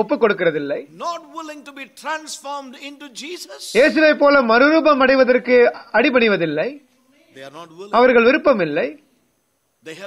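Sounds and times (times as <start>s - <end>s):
man preaching: 0.8s - 4.5s, 7.2s - 8.4s.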